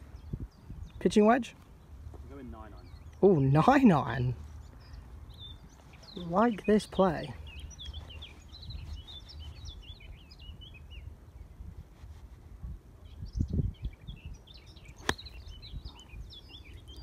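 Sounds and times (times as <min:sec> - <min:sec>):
wind rumble on microphone: 0:00.0 - 0:01.2, 0:07.5 - 0:17.0
birds chirping: 0:00.0 - 0:11.7, 0:13.0 - 0:17.0
golf club striking ball: 0:15.0 - 0:15.4.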